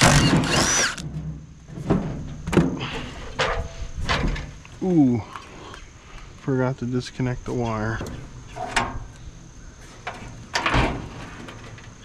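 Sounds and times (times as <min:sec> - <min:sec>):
impact driver hammering: 0:00.0 - 0:01.0.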